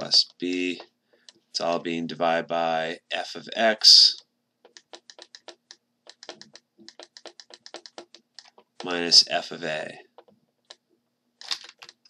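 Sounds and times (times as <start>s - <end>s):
stylus clicking on tablet: 4.2s - 9.0s, 10.1s - 12.0s.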